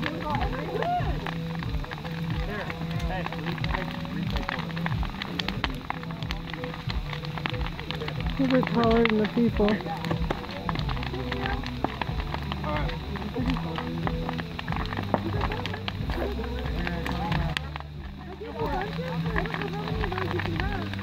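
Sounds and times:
bonfire crackling and popping: 0:00.0 - 0:21.0
voices talking: 0:00.0 - 0:21.0.

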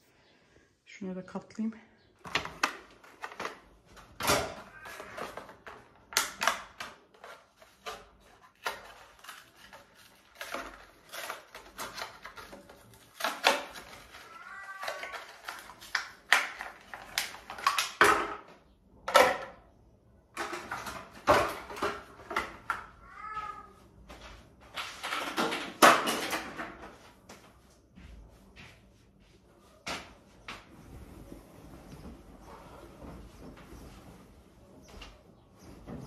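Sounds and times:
plastic items clicking and tapping: 0:02.2 - 0:19.6, 0:20.3 - 0:22.9, 0:24.8 - 0:26.9.

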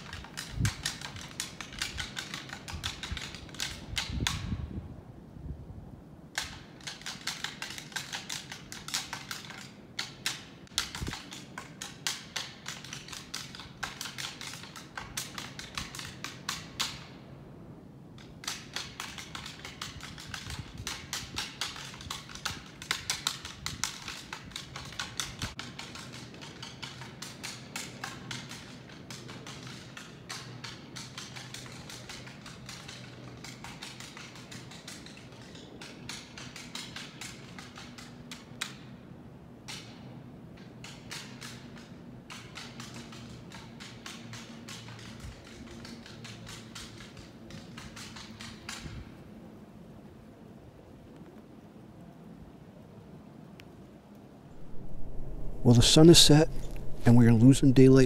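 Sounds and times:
antlers clacking together: 0:00.0 - 0:04.5, 0:06.3 - 0:17.2, 0:18.2 - 0:39.0, 0:39.6 - 0:49.2.

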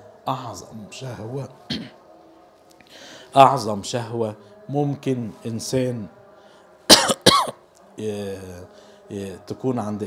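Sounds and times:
man coughing into microphone: 0:01.7 - 0:02.0, 0:06.9 - 0:07.6.

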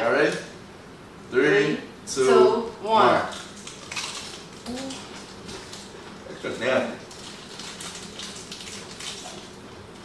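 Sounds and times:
chip being bitten and chewed: 0:03.4 - 0:06.0, 0:07.0 - 0:09.6.

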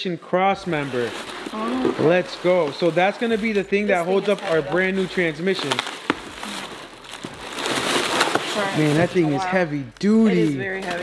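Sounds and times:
packing paper crinkling: 0:00.6 - 0:11.0.

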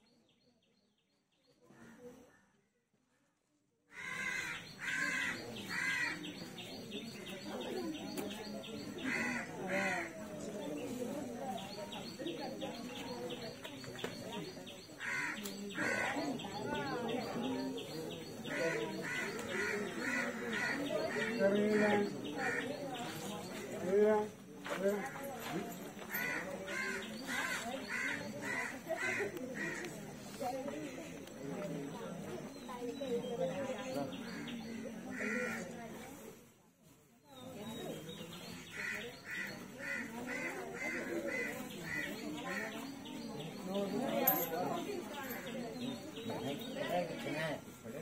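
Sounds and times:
crow cawing: 0:03.9 - 0:06.2, 0:15.0 - 0:16.0.

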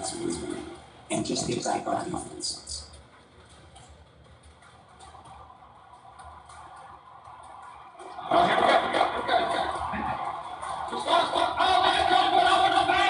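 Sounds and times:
faint room hum: 0:00.0 - 0:13.0.

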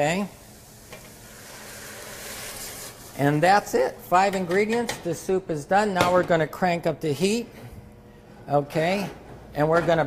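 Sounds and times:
broth pouring into pot: 0:00.4 - 0:03.2.

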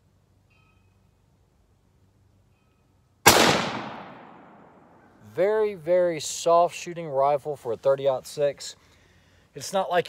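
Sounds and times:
rifle shot with echo: 0:03.2 - 0:05.1.

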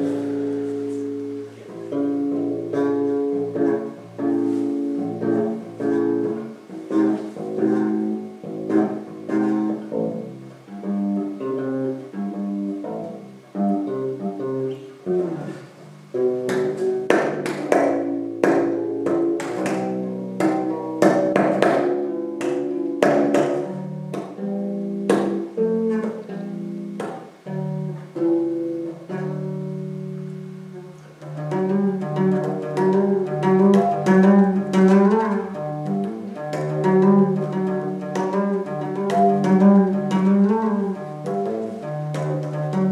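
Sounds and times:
electric bass guitar playing: 0:00.0 - 0:42.9.

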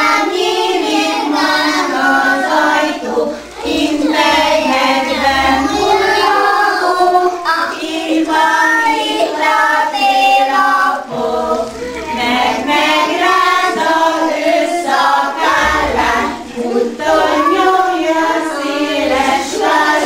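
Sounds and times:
children singing in unison: 0:00.0 - 0:20.0.

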